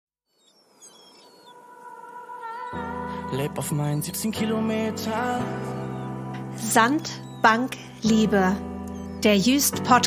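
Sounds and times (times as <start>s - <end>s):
high bird chirps: 0.2s - 3.3s, 5.2s - 10.0s.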